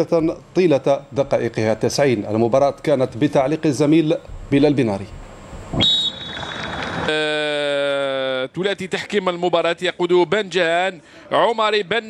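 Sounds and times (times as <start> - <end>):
noisy hiss: 0.0 - 12.0.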